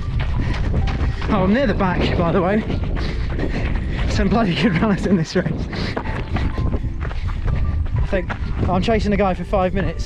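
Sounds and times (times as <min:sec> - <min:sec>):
footsteps on stony path: 0:00.0 - 0:10.0
wind buffeting microphone: 0:00.0 - 0:10.0.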